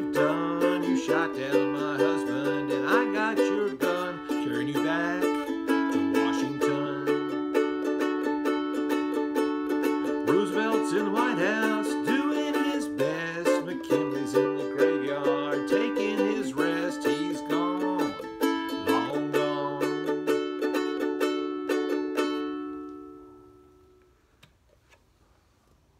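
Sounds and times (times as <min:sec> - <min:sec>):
man singing: 0:00.0 - 0:07.6, 0:10.0 - 0:20.5
ukulele strumming: 0:00.0 - 0:24.0.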